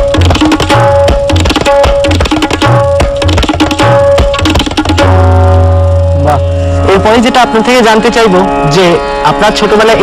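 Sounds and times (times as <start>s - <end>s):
tabla stroke ringing: 0.0s - 10.0s.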